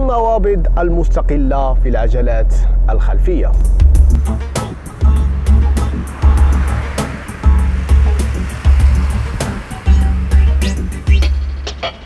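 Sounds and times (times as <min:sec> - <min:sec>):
deep heavy bass beat: 0:03.5 - 0:12.0
sharp percussion hits: 0:03.6 - 0:12.0.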